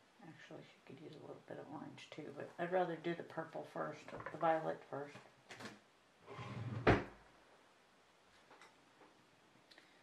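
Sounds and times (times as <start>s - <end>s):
scrape on tabletop: 6.3s - 6.8s.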